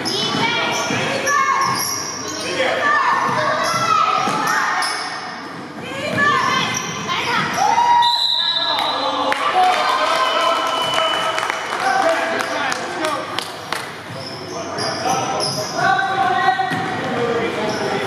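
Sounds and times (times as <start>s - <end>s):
basketball bouncing on court: 16.6s - 17.2s.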